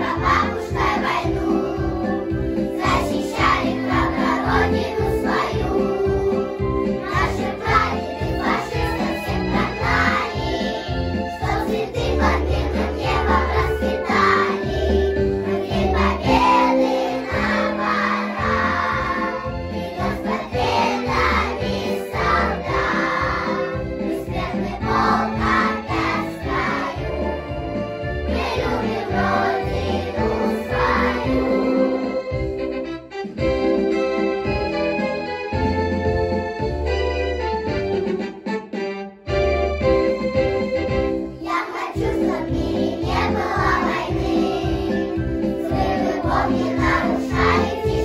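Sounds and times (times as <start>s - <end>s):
children's choir singing: 0.0s - 32.4s, 41.4s - 48.0s
instrumental accompaniment with bass: 0.0s - 48.0s.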